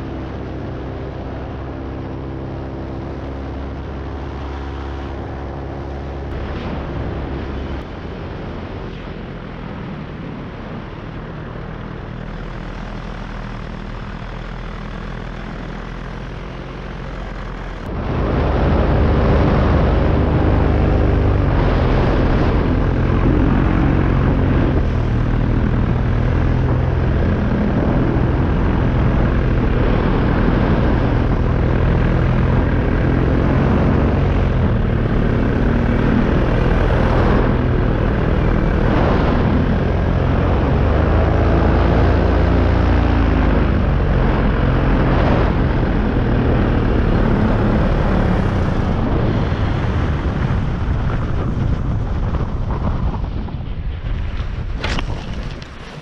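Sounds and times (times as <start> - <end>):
paramotor engine and propeller: 0.0 - 56.0
wind on microphone: 0.0 - 56.0.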